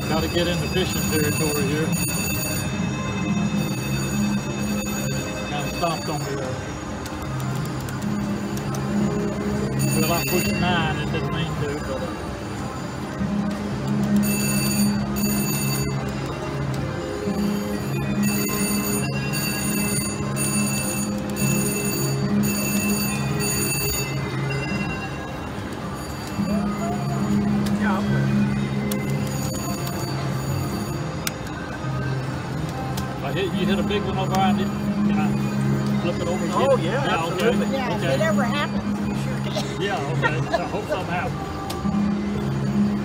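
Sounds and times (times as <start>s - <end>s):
high bell-like ringing chime: 0.0s - 6.7s, 9.7s - 12.1s
slot machine two-note spin tone: 0.0s - 6.9s, 8.1s - 13.3s.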